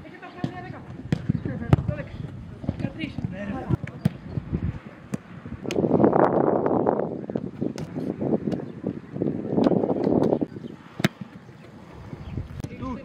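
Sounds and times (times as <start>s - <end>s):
footballs being kicked: 0.4s - 4.3s, 9.6s - 11.4s
wind hitting microphone: 0.4s - 13.0s.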